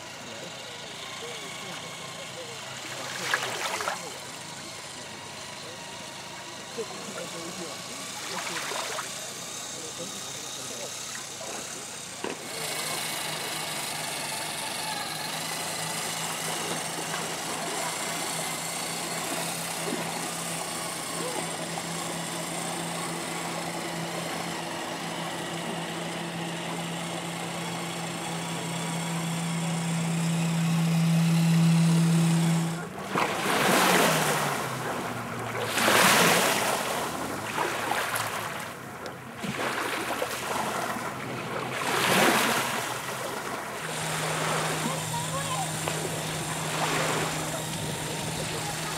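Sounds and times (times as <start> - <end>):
toy truck motor whining: 0.0 - 37.2, 42.0 - 48.9.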